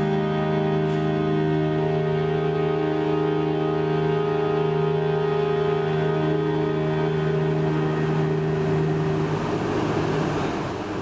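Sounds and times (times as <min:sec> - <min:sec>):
steady noise: 0:00.0 - 0:11.0
string quartet sustained chord: 0:00.0 - 0:11.0.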